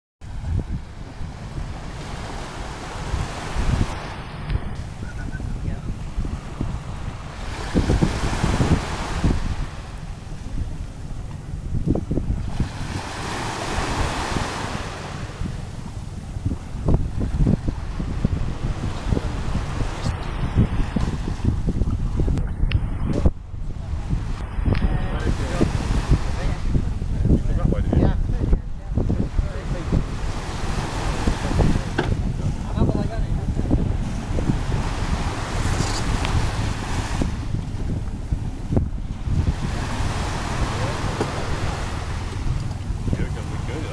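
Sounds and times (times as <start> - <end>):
sea water washing on shore: 0.2 - 27.7, 28.9 - 43.9
wind buffeting microphone: 0.2 - 43.9.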